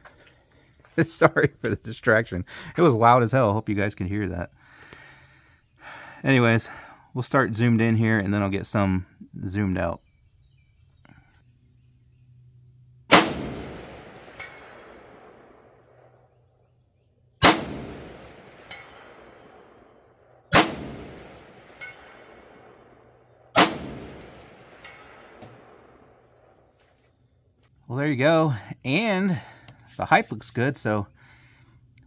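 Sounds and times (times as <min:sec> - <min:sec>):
rifle shots with rolling echo: 0:13.1 - 0:16.3, 0:17.4 - 0:26.7.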